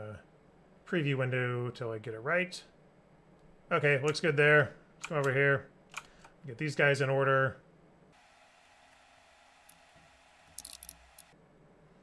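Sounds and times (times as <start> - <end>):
computer clicks: 5.0 - 6.4.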